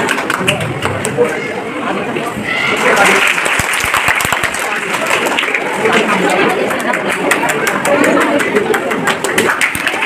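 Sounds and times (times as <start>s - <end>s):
audience applauding: 0.0s - 1.2s, 2.7s - 10.0s.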